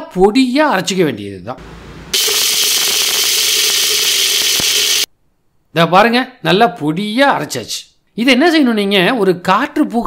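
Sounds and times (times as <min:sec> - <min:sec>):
mixer grinder whirring: 0:01.6 - 0:05.1.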